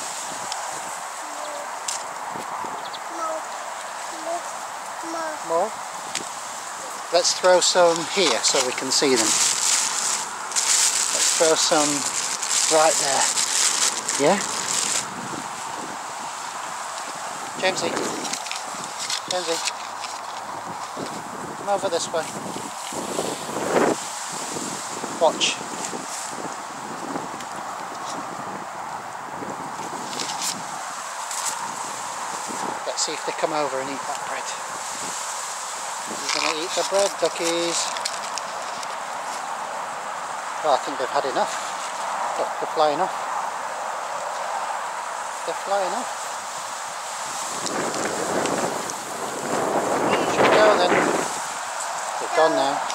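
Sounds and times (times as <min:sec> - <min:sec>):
wind on microphone: 0:00.0 - 0:40.5, 0:42.1 - 0:52.9
short high voice: 0:03.1 - 0:03.5, 0:04.1 - 0:05.6.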